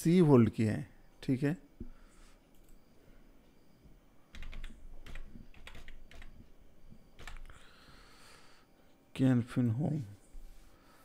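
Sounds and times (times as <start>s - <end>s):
typing on computer keyboard: 4.3s - 6.4s, 7.2s - 7.5s.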